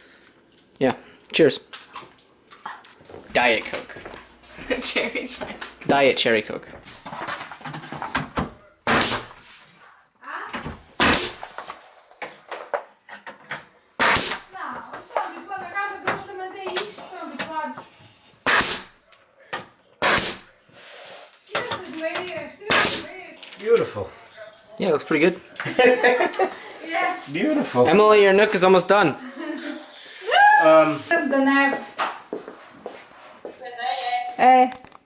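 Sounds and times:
nail gun firing: 8.8s - 9.3s, 11.0s - 11.4s, 14.0s - 14.5s, 18.4s - 18.9s, 20.0s - 20.4s, 22.7s - 23.1s.

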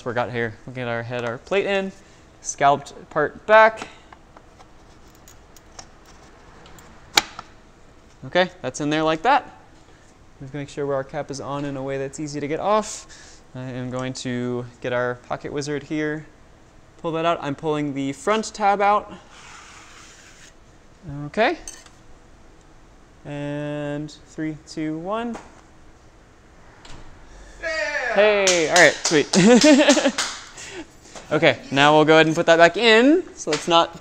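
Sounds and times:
dark slide sliding scrape: 26.4s - 28.4s.

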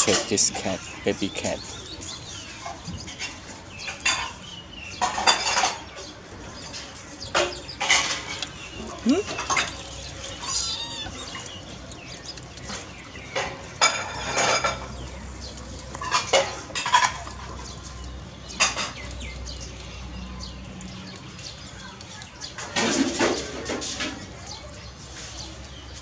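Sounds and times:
high-pitched animal calls: 8.8s - 11.8s.

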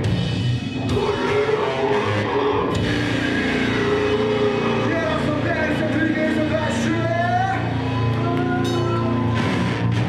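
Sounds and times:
heavy rock band playing: 0.0s - 10.0s
vocalist singing into microphone: 0.9s - 7.5s.

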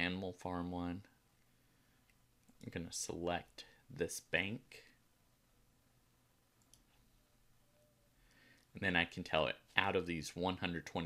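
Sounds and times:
faint computer mouse click: 6.6s - 7.0s.

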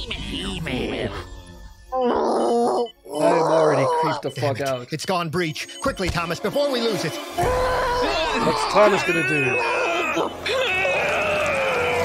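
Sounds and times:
cartoon character screaming: 7.4s - 12.0s.

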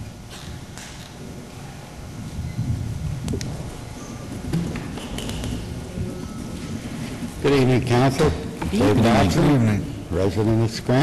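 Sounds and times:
low rumbling room noise: 0.0s - 11.0s.

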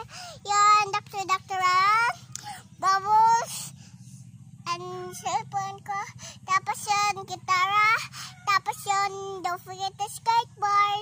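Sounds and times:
girl singing: 0.0s - 3.8s, 4.7s - 11.0s.

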